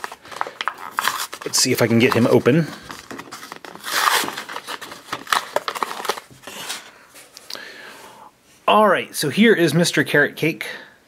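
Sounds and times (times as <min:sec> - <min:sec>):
plastic packaging crinkling and tearing: 0:00.0 - 0:06.9.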